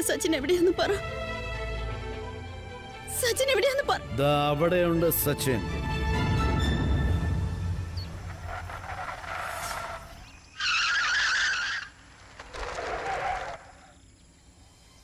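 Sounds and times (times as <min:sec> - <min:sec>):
car engine: 0:07.7 - 0:13.7
tyres skidding on gravel: 0:07.9 - 0:14.1.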